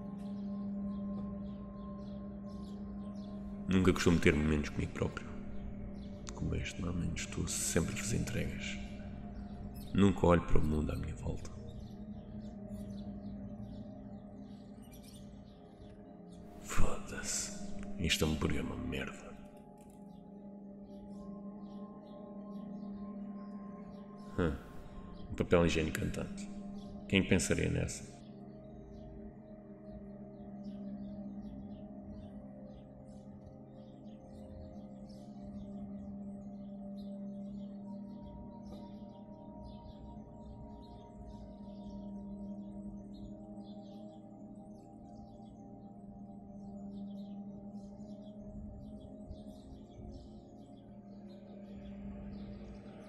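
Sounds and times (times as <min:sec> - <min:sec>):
ambient drone music ringing tones: 0:00.0 - 0:53.0
small birds chirping: 0:00.0 - 0:53.0.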